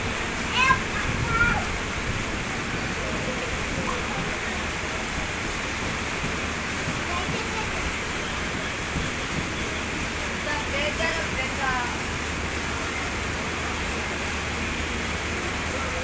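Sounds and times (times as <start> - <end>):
train wheels running on rails: 0.0 - 16.0.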